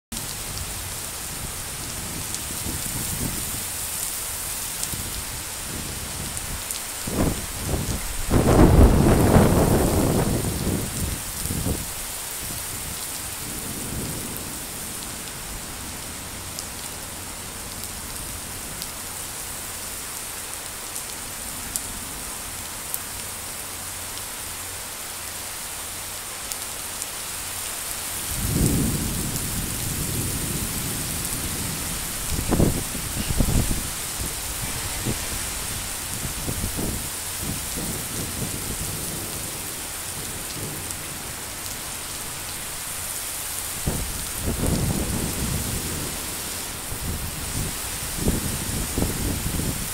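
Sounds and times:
heavy rain falling: 0.1s - 49.9s.

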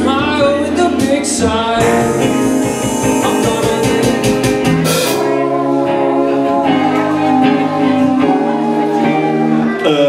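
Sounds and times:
electric guitars and bass chords: 0.0s - 10.0s
drum hit: 0.4s - 5.4s.

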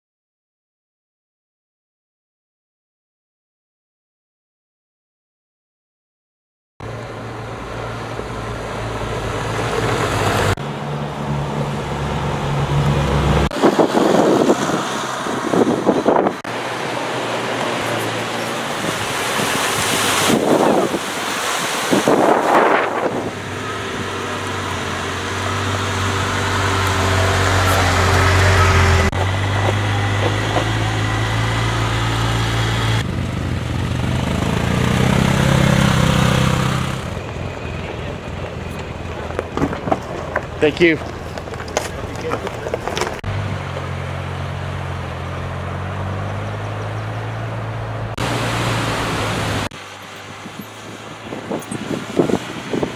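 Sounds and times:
utility vehicle engine running: 6.8s - 21.9s, 22.5s - 52.9s
tyres on gravel: 12.8s - 32.3s, 34.7s - 47.5s.

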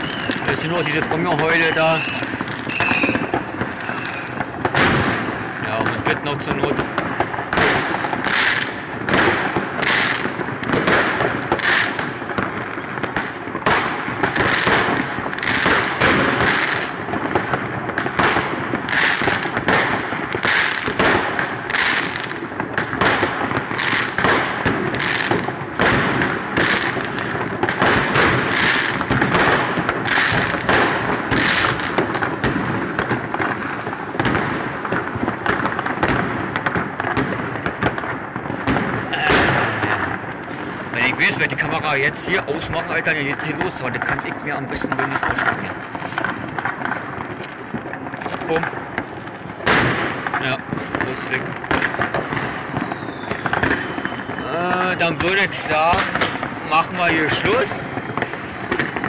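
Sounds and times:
distant fireworks bangs: 0.0s - 59.0s
firecrackers crackling: 0.0s - 59.0s.

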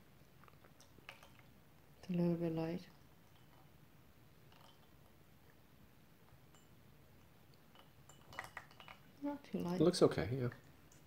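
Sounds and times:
porcelain clinks: 6.5s - 6.8s.

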